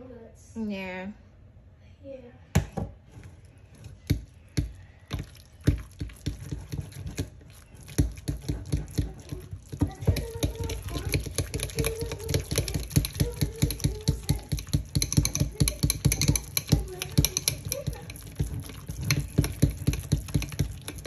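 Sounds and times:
spoon mashing cream cheese in metal bowl: 0:03.1 - 0:21.0.

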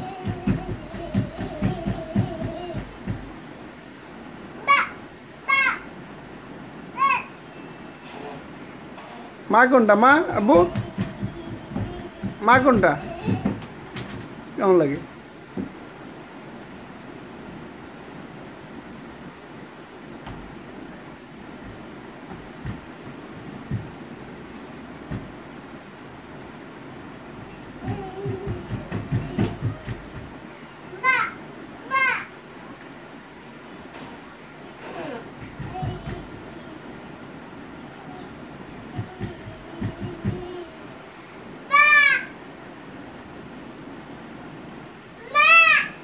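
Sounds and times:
soft low thumps: 0:00.0 - 0:03.4, 0:10.2 - 0:14.4, 0:21.5 - 0:24.4, 0:25.0 - 0:25.5, 0:27.4 - 0:30.4, 0:35.4 - 0:36.7, 0:38.7 - 0:40.7
room noise hiss: 0:00.0 - 0:46.0.

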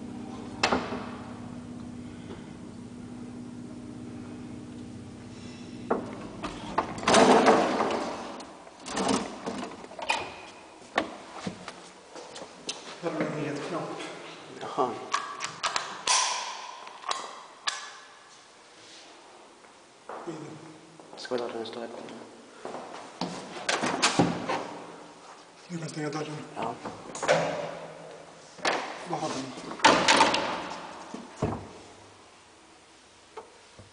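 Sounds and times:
elevator hum: 0:00.0 - 0:10.8
elevator gate knocks and clatters: 0:06.0 - 0:10.5, 0:29.8 - 0:30.8.

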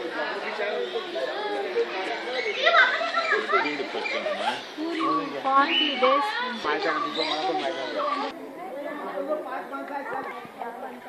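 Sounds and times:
murmur of people talking: 0:00.0 - 0:11.0.

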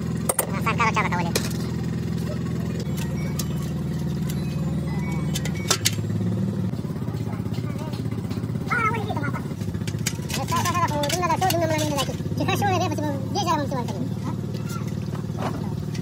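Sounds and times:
engine running: 0:00.0 - 0:16.0.

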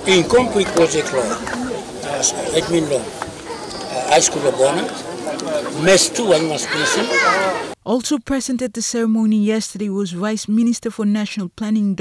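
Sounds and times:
man talking into a microphone: 0:00.0 - 0:07.7
higher voices: 0:00.0 - 0:07.8.

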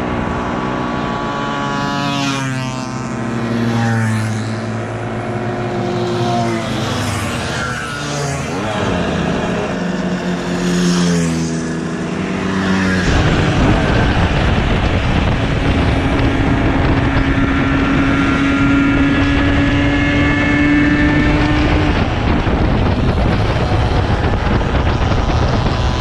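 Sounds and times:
moped engine at cruising speed: 0:00.0 - 0:26.0
mopeds passing by: 0:00.0 - 0:26.0
wind noise: 0:08.3 - 0:26.0.

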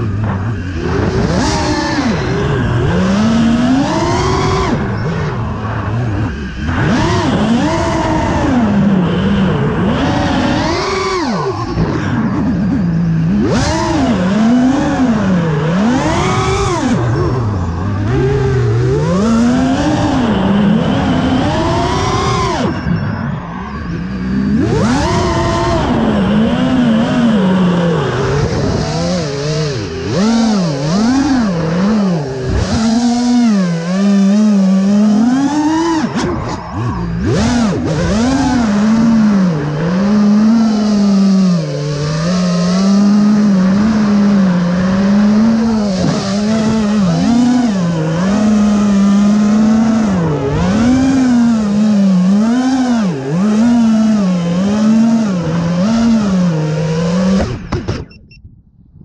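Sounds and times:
drone motors whining: 0:00.0 - 0:58.6.

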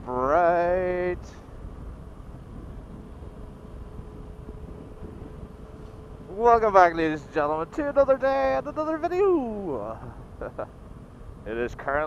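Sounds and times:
faint steady hum: 0:00.0 - 0:12.0
motorcycle road rumble: 0:00.0 - 0:12.0
wind noise on microphone: 0:00.0 - 0:12.0.

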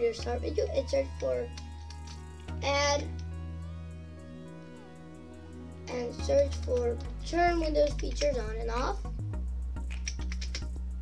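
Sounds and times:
background music with low bass: 0:00.0 - 0:11.0.

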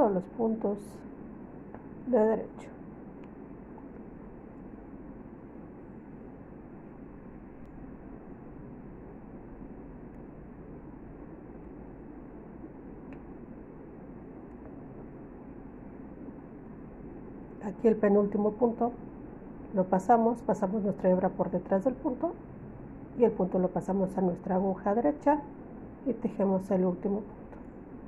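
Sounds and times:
low room hiss: 0:00.0 - 0:28.0.

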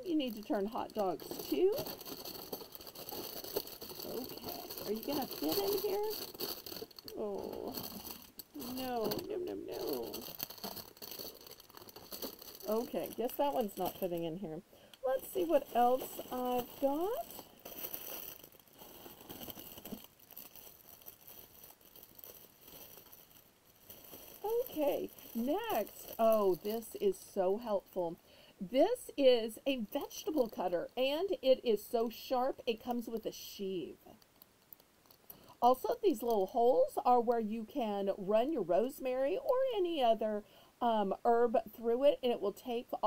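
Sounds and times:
plastic packaging rustling: 0:00.0 - 0:14.4, 0:15.1 - 0:27.8
faint steady hiss: 0:00.0 - 0:43.0.

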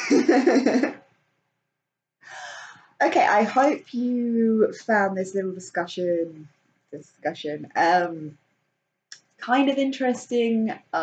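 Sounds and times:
person laughing: 0:00.0 - 0:01.0.

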